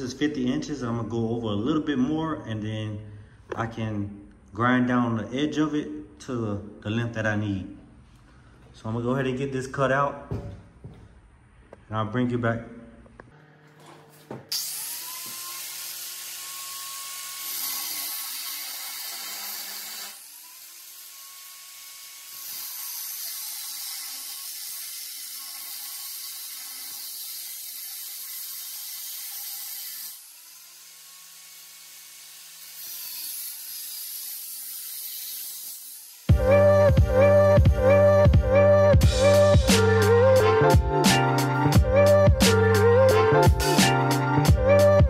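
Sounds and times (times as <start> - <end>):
angle grinder cutting steel: 13.6 - 36.3.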